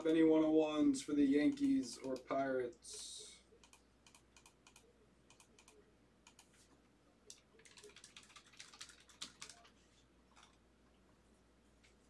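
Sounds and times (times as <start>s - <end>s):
faint typing on a keyboard: 1.4s - 11.0s.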